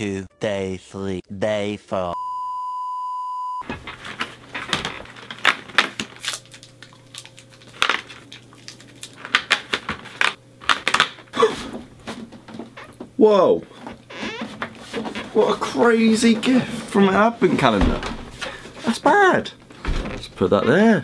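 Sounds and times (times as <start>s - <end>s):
high steady beep: 2.2s - 3.6s
cardboard crackling and rustling: 3.6s - 11.2s.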